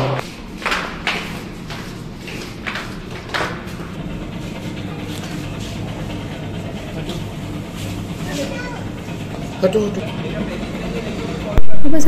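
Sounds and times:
engine running low hum: 0.0s - 11.9s.

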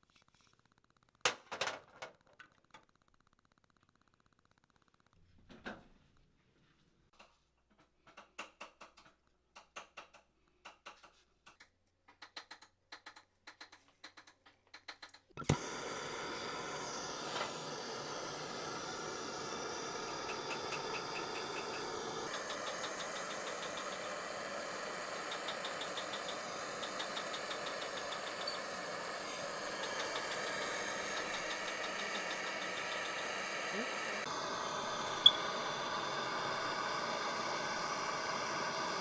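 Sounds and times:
torch flame hissing: 15.4s - 39.0s.

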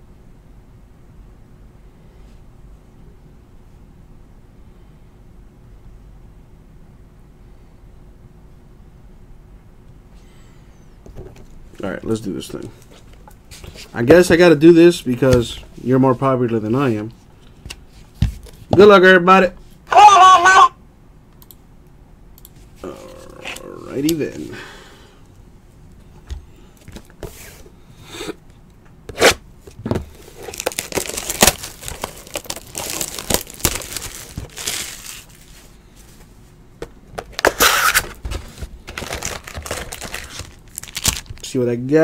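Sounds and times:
plastic shrink wrap crinkling: 30.1s - 35.8s, 37.4s - 41.5s.

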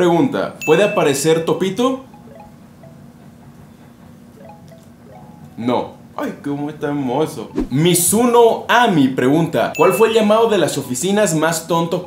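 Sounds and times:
chime-like bell tones: 0.6s - 3.4s, 4.4s - 6.0s, 9.8s - 10.8s
low steady hum: 4.3s - 8.4s.

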